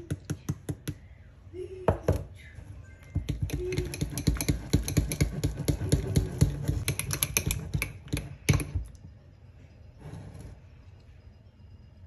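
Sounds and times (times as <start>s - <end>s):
whisk clicking against glass bowl: 3.3s - 8.8s.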